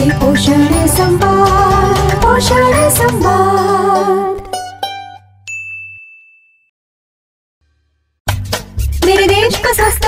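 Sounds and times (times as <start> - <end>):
background music: 0.0 - 5.4
bright high ding: 5.5 - 6.7.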